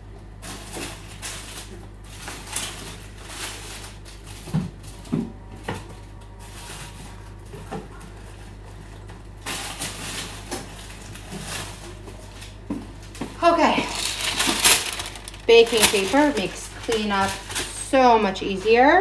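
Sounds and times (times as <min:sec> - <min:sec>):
baking paper rustling: 0:00.4 - 0:19.0
kitchen things knocking: 0:13.8 - 0:16.6.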